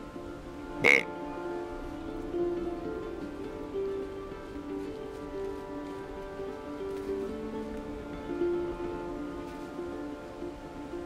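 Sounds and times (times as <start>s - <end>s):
background music: 0.0s - 11.0s
deer grunt call: 0.8s - 1.2s.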